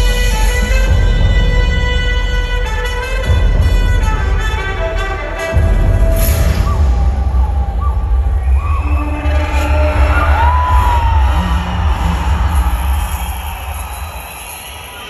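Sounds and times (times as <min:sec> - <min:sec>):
loud stage music with heavy bass: 0:00.0 - 0:15.0
crowd cheering and shouting: 0:05.3 - 0:15.0.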